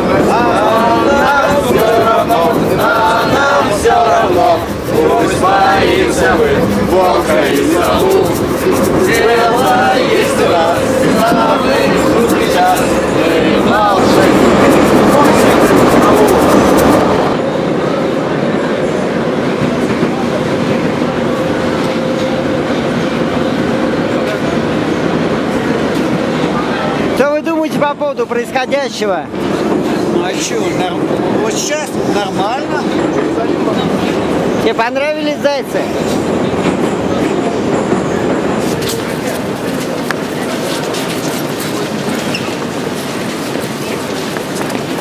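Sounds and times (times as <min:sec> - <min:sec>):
metro train rumble: 0:00.0 - 0:45.0.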